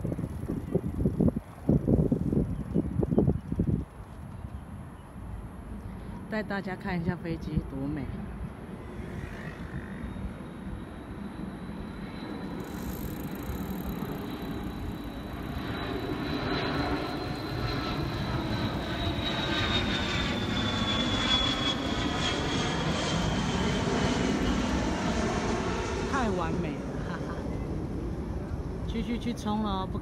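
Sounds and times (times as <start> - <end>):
high jet engine whine: 0.0 - 30.0
jet airliner flying overhead: 0.0 - 30.0.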